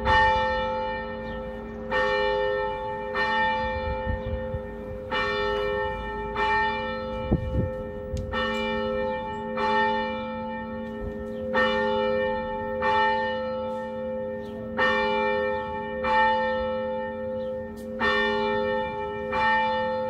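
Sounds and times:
church bell tolling: 0.0s - 20.0s.

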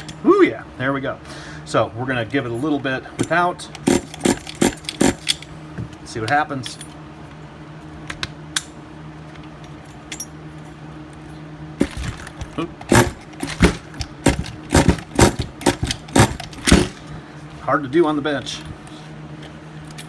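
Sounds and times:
steady low hum: 0.0s - 20.0s
rasping pull-starter pulls: 3.2s - 5.5s, 11.8s - 17.2s.

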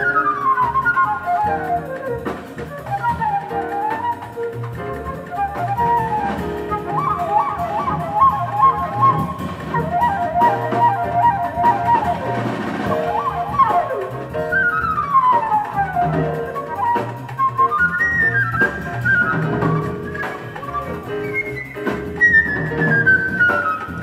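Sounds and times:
jazz flute solo: 0.0s - 24.0s
upright bass: 0.0s - 24.0s.

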